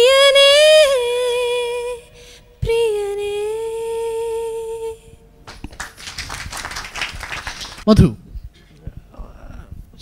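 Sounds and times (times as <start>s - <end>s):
woman singing a long note: 0.0s - 5.2s
scattered applause: 5.5s - 7.9s.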